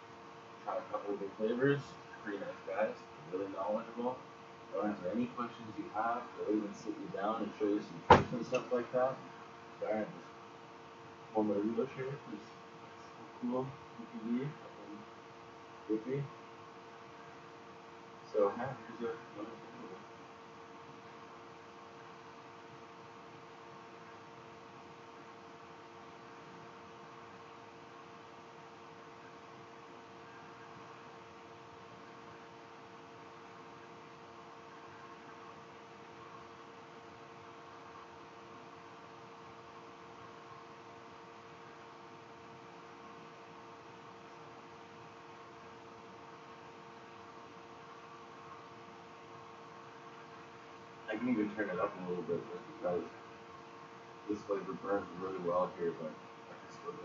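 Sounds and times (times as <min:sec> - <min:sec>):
faint steady hiss: 0:00.0 - 0:57.0
low electrical hum: 0:00.0 - 0:57.0.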